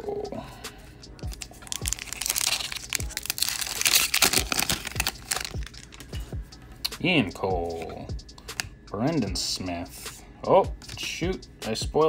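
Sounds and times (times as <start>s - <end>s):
background music with beat: 0.0s - 12.0s
wrapper crinkling and tearing: 1.2s - 6.2s.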